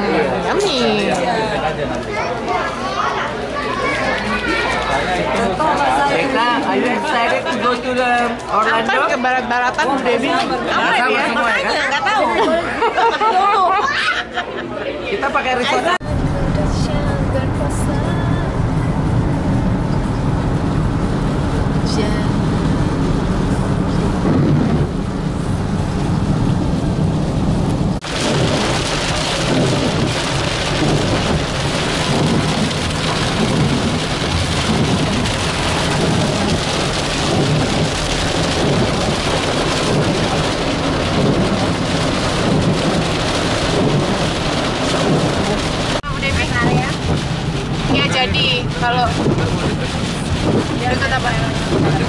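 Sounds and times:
road and engine rumble: 0.0 - 52.0
rain drumming on car: 16.0 - 52.0.

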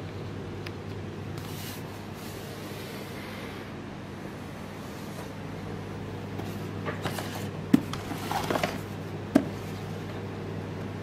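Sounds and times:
steady low hum: 0.0 - 11.0
cardboard rustling: 6.4 - 9.8.

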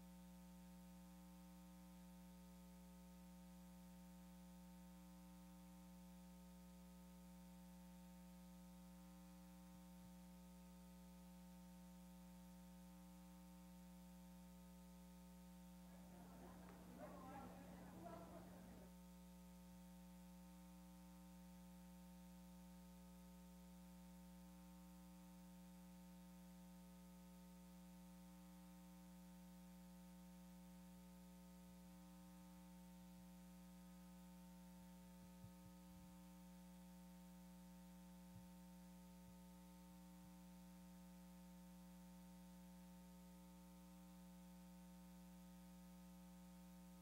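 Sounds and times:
faint electrical hum: 0.0 - 47.0.

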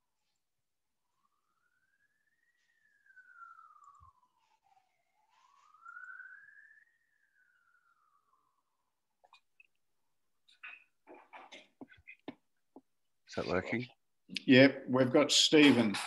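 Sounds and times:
faint wailing siren: 0.0 - 12.2.

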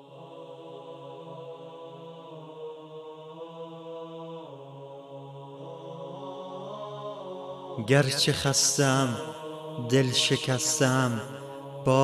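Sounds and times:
man reciting a poem: 7.8 - 12.0.

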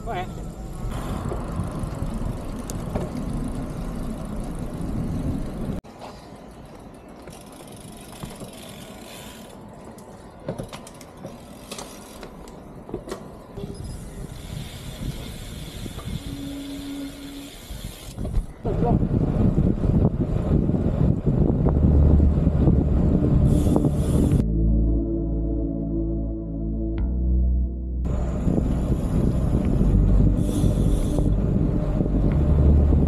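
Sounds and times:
road traffic noise: 0.0 - 26.8, 28.0 - 33.0
short steady hum: 21.8 - 33.0.

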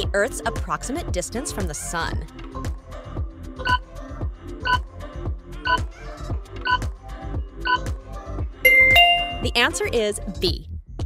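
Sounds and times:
background music with steady beat: 0.0 - 11.0
electronic countdown beeps: 4.6 - 4.8, 7.6 - 7.9, 8.7 - 9.8.

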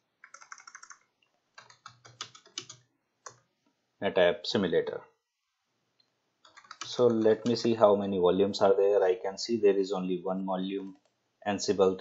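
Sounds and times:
computer keyboard typing: 0.2 - 3.5, 6.4 - 7.7.

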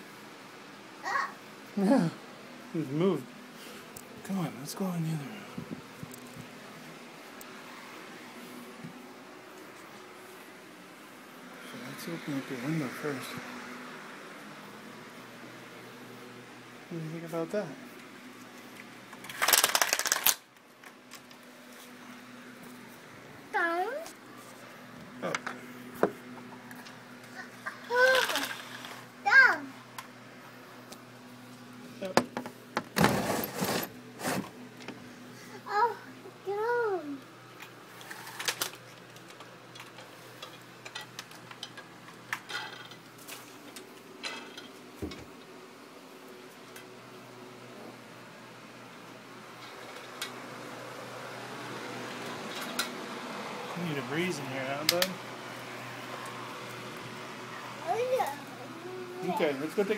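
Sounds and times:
window blinds clattering: 19.2 - 20.4, 33.0 - 34.5.

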